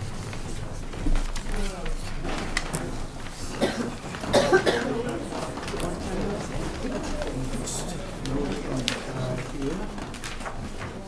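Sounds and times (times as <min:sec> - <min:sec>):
person coughing: 0:03.5 - 0:05.2.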